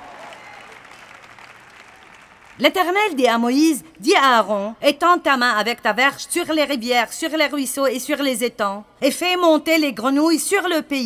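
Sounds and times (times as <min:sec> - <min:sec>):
audience applauding softly: 0:00.0 - 0:02.6.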